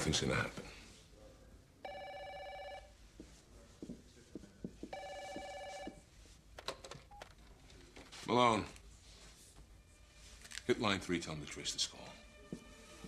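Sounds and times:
electronic telephone ringing: 1.8 - 2.9, 4.9 - 6.0.

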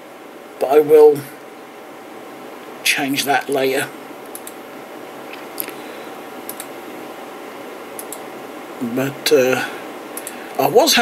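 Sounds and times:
room noise: 0.0 - 11.0
faint clicks: 4.2 - 4.6, 6.4 - 6.8, 8.0 - 8.2, 10.1 - 10.6.

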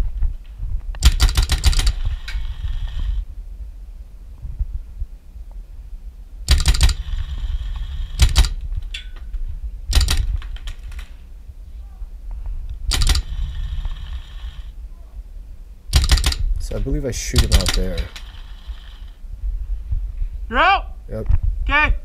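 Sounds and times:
wind rumbling on microphone: 0.0 - 22.0
paintball marker firing: 1.0 - 3.2, 6.5 - 8.6, 9.9 - 10.8, 12.9 - 14.6, 15.9 - 16.6, 17.4 - 19.1.

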